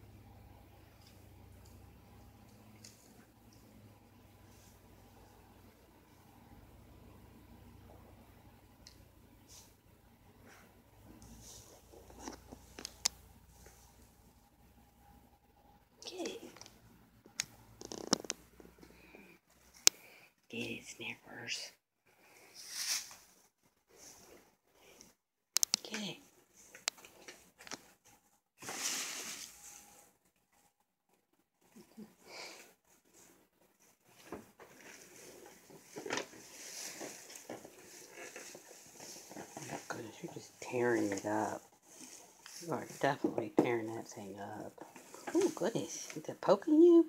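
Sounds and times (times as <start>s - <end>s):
paper crinkling and rustling: 34.2s - 40.4s.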